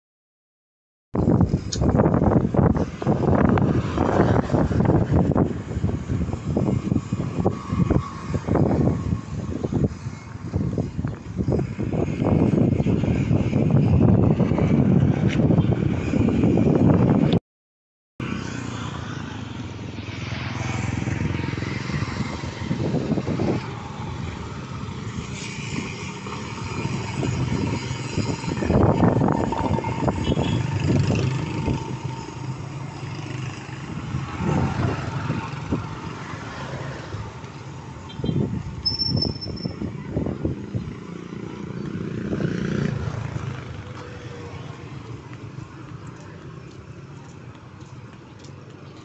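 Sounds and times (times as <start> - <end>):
motorcycles passing: 1.2 - 17.4, 18.2 - 49.0.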